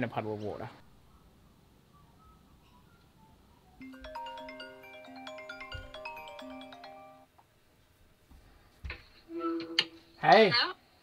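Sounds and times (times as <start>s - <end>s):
chiming call tone melody: 1.1s - 7.3s.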